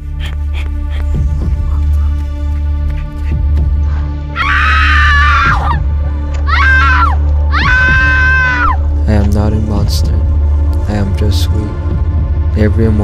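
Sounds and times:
background music with low drone: 0.0s - 13.0s
person screaming: 4.4s - 5.8s, 6.4s - 8.8s.

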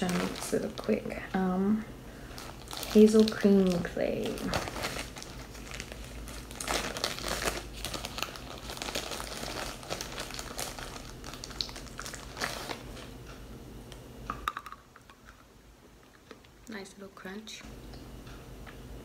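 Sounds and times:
packet crinkling: 0.0s - 1.2s, 2.2s - 13.1s.

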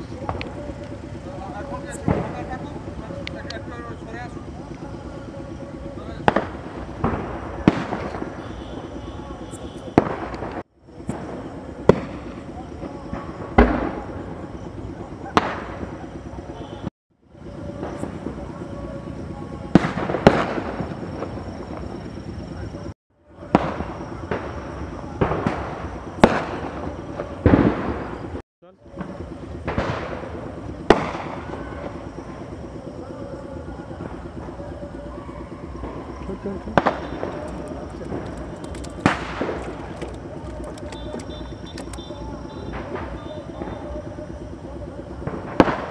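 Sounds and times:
firecrackers banging: 0.0s - 45.9s
background voices: 31.5s - 45.9s.

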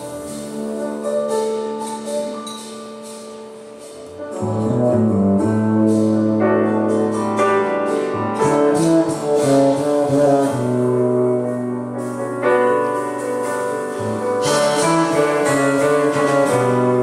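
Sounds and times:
double bass held notes: 0.0s - 17.0s
jazz piano chords: 0.0s - 17.0s.

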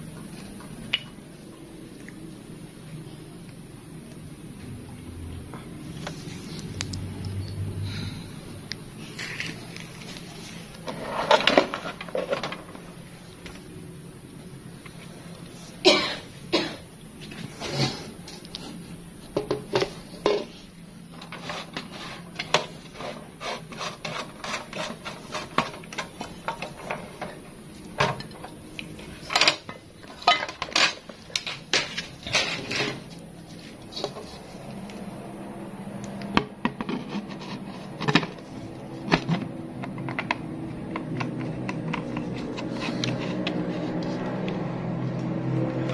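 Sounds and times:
electric fan motor hum: 0.0s - 45.9s
person coughing: 15.8s - 16.8s.

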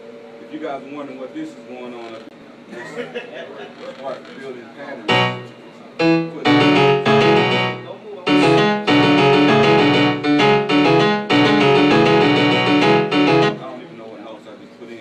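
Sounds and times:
piano chords: 5.0s - 14.0s.

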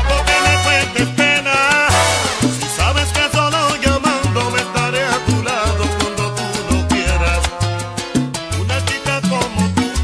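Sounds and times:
salsa dance band music: 0.0s - 10.0s.

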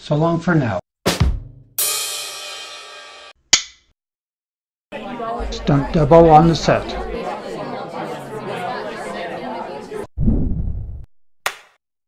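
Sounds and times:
cymbal crash: 1.8s - 3.4s.

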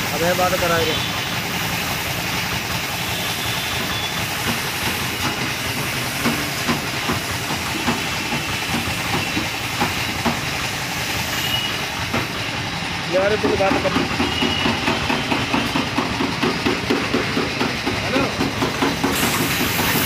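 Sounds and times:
paint spray gun hissing: 2.9s - 10.2s, 19.0s - 20.0s.

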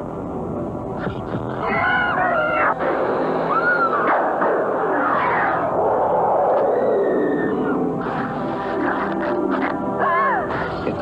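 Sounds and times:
eerie rumbling horror score: 0.1s - 11.0s.

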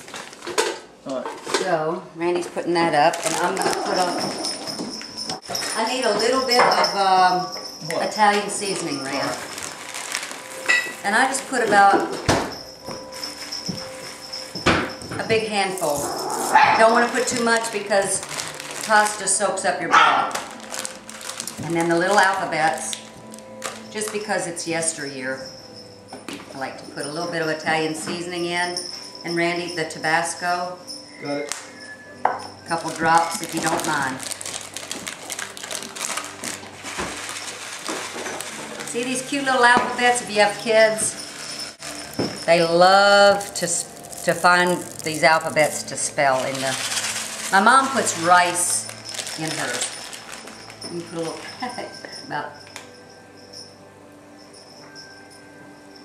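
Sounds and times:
plastic bag crinkling: 0.0s - 0.8s, 2.9s - 6.3s, 8.4s - 14.6s, 15.6s - 24.2s, 32.7s - 52.1s
dry pasta pouring into hand: 43.2s - 48.2s.

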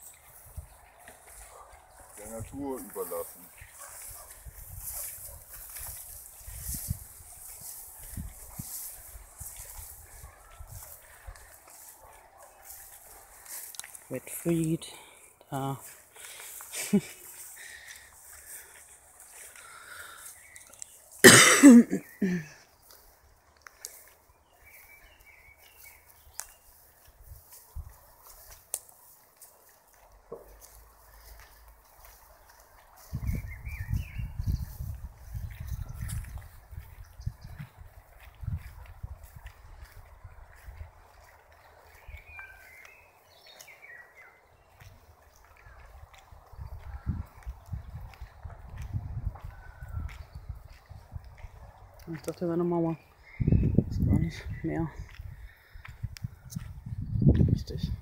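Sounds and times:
person laughing: 16.7s - 17.4s, 21.3s - 22.6s.

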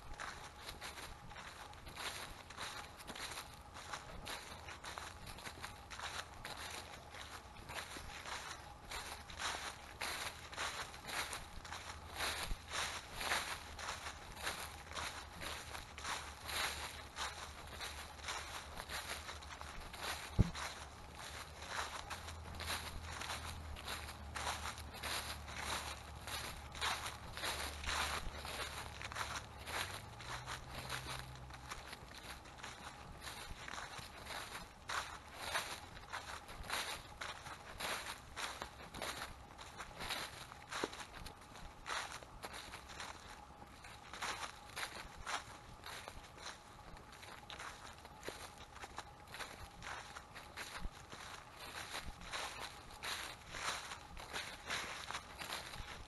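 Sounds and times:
footsteps crunching dry leaves: 0.0s - 56.0s.

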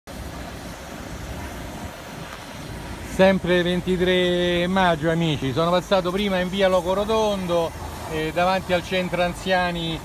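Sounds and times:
outdoor background rumble: 0.1s - 10.0s.

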